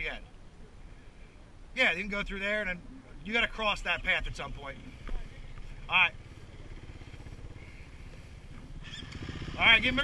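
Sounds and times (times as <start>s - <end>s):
dirt bike engine idling: 2.4s - 10.0s.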